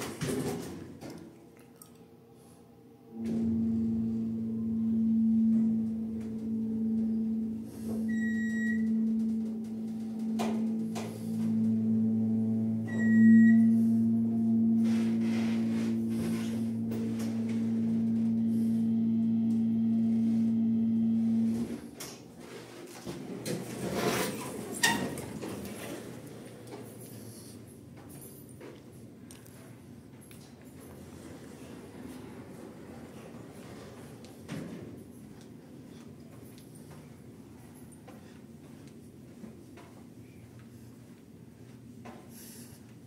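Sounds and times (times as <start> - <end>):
elevator drive humming: 2.9 - 22.0
short high beeps: 3.2 - 21.5.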